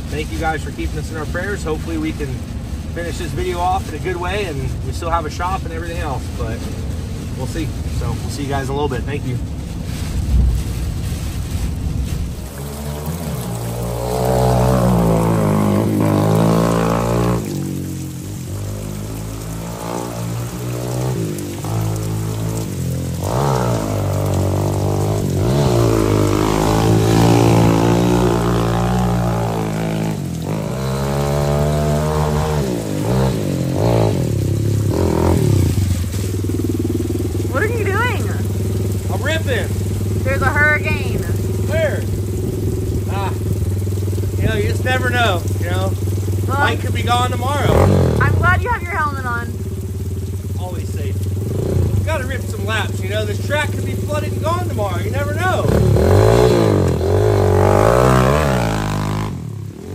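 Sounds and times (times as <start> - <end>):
dirt bike engine revving: 12.0 - 59.9.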